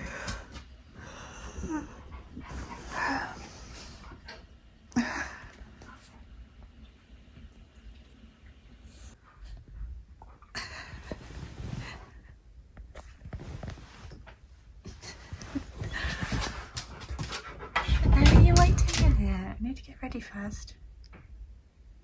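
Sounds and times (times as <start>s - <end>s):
dog panting: 1.2s - 4.3s, 15.9s - 18.6s.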